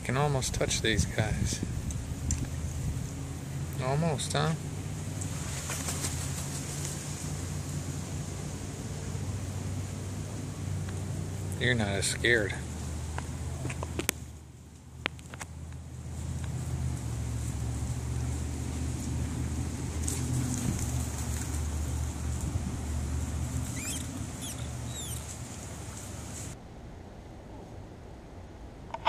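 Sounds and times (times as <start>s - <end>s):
low rumble: 15.7s - 29.0s
bird chirps: 23.6s - 25.4s.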